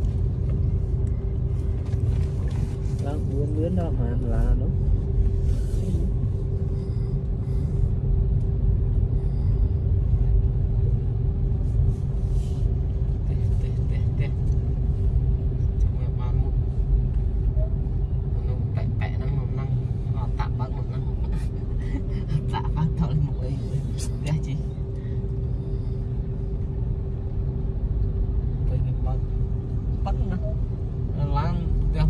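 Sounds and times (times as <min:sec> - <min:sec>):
car engine and road rumble: 0:00.0 - 0:32.0
constant hum: 0:00.0 - 0:32.0.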